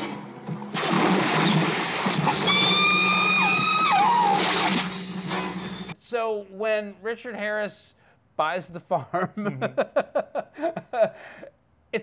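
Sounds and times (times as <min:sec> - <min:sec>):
churning splashing water: 0:00.2 - 0:05.1.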